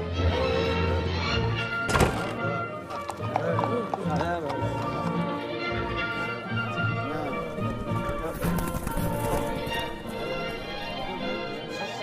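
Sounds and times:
music: 0.0 - 12.0
hooves clopping: 2.1 - 5.4, 7.2 - 11.6.

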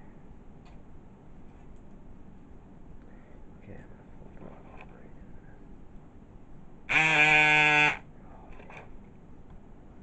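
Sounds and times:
loud steady buzzing tone: 6.8 - 8.8.

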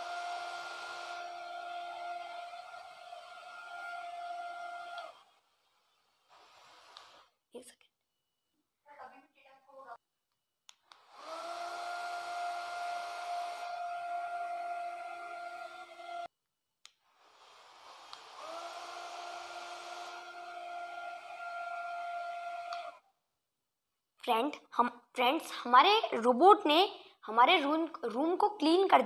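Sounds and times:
small motor whining: 0.0 - 5.4, 10.9 - 16.3, 17.2 - 23.0.

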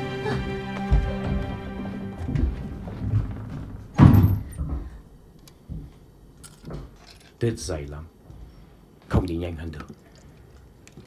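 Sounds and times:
faint knocks and rattles: 0.9 - 7.4
door shutting with heavy thump: 2.2 - 5.0.

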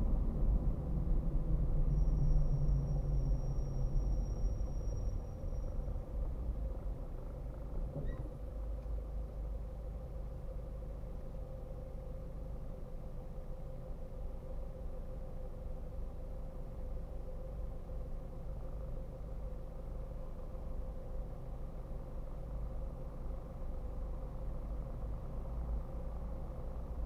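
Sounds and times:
car engine and road rumble: 0.0 - 27.0.

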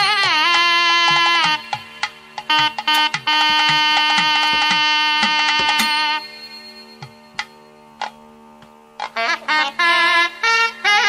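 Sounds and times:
double reed horn notes: 0.0 - 1.8, 2.4 - 6.4, 9.0 - 11.0
drum strokes: 0.0 - 10.5
steady drone: 0.0 - 11.0.

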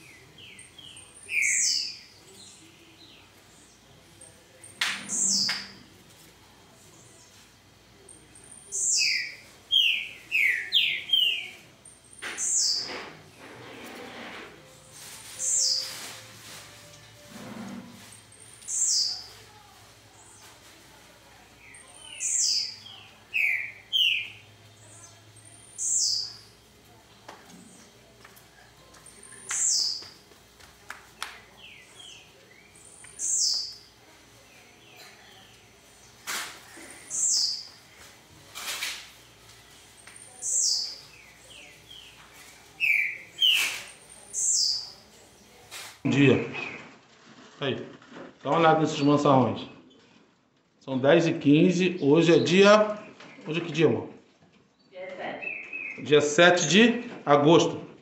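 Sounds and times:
caged songbirds chirping: 0.0 - 46.9, 51.0 - 56.9.

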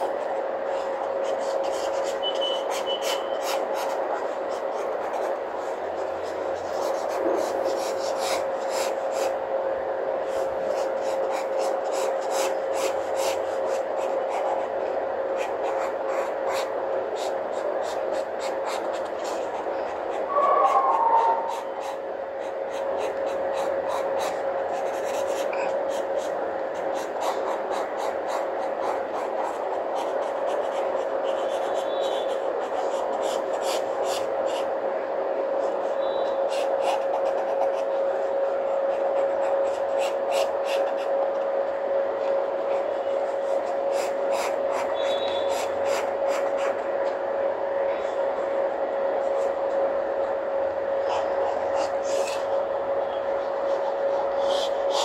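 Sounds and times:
pencil scratching on paper: 0.0 - 9.4, 10.3 - 34.7, 35.6 - 41.1, 42.6 - 46.8, 51.0 - 52.6, 53.6 - 55.0
constant whine: 0.0 - 55.0.

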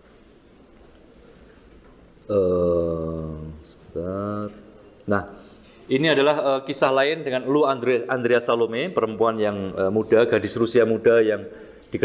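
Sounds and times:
faint high squeak: 0.8 - 1.4.

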